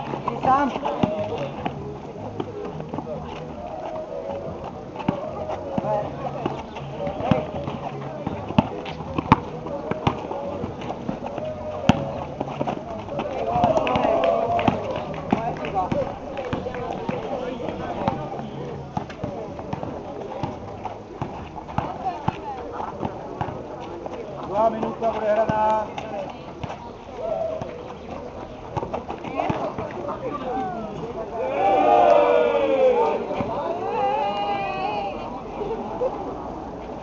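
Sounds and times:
players' voices: 0.0 - 37.0
basketball bouncing on asphalt: 3.9 - 27.0.

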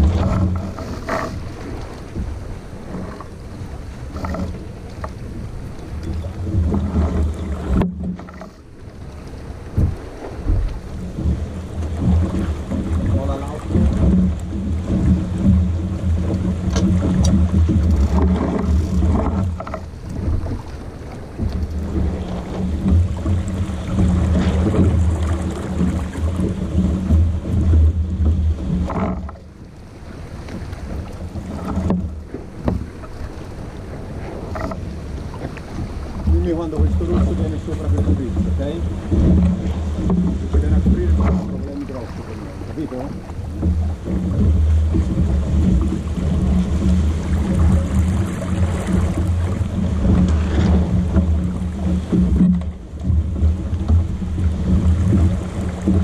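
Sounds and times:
water rushing past hull: 0.0 - 56.0
wind buffeting microphone: 0.0 - 56.0.

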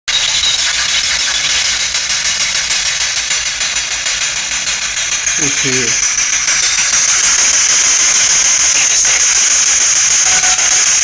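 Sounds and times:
radio static hiss: 5.4 - 6.1, 7.2 - 11.0.

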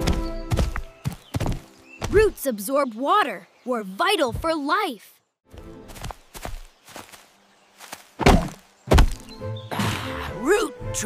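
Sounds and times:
cartoon footsteps: 7.8 - 9.3.

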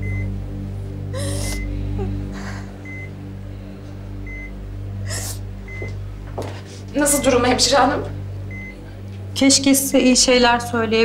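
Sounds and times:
patient monitor beeping: 0.0 - 0.4, 2.8 - 3.2, 4.3 - 4.6, 5.7 - 6.0, 7.1 - 8.8
soft background music: 0.0 - 11.0
woman sobbing: 1.1 - 2.8.

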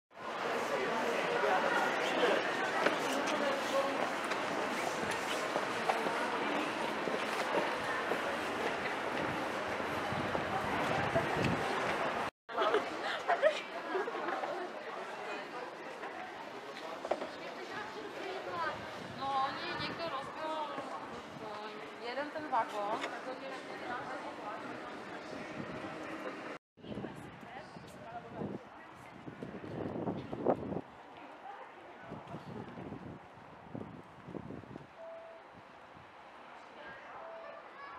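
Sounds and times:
passers-by chattering: 0.2 - 33.2
low background murmur: 0.2 - 34.3.

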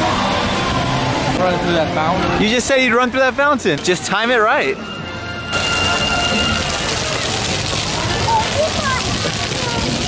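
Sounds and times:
fountain jets spraying water: 0.0 - 10.0
water pattering on pavement: 5.5 - 10.0
faint voices of people and children: 6.3 - 10.0.

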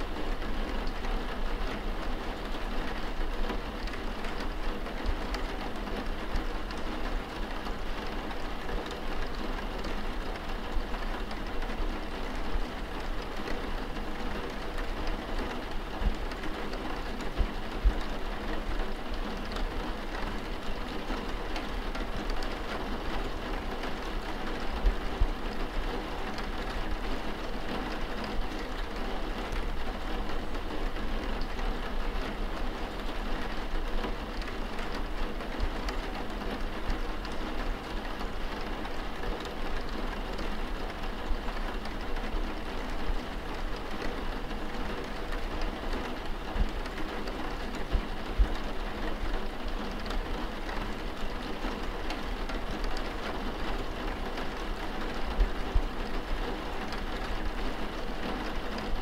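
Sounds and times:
rain falling: 0.0 - 59.0.

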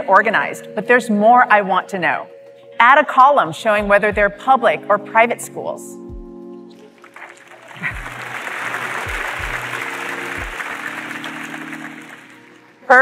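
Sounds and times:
background music: 0.0 - 13.0
audience applauding: 7.0 - 12.8
audience laughing: 7.6 - 11.9.

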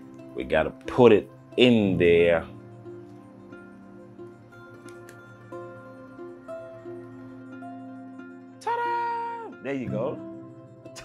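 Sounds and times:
slow background music: 0.0 - 11.0.

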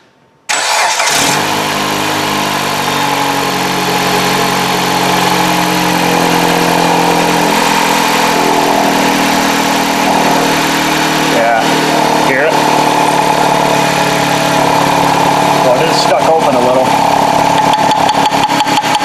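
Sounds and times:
car engine idling: 0.5 - 19.0
air pump whine: 2.2 - 19.0.

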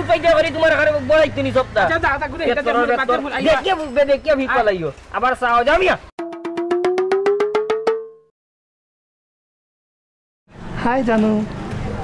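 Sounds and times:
rising tone: 6.2 - 8.3.

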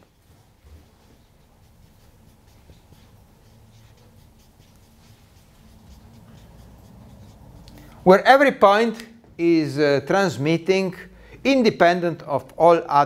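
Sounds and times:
marker writing on a whiteboard: 0.6 - 9.4.

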